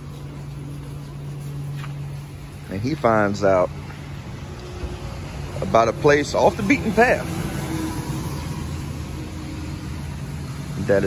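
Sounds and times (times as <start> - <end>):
low engine hum: 0.0 - 11.0
road traffic hiss: 0.0 - 11.0.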